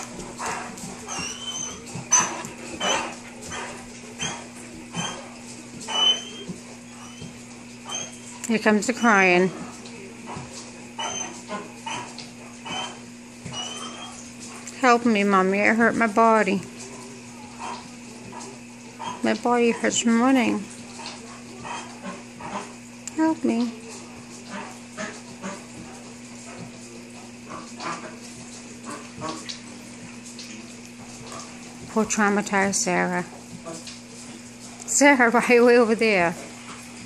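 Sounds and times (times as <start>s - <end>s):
dog panting: 0.0s - 14.8s, 16.7s - 22.8s, 24.0s - 30.2s, 30.9s - 32.3s
low room hum: 0.0s - 37.0s
dog whining: 0.4s - 8.4s, 11.0s - 14.3s.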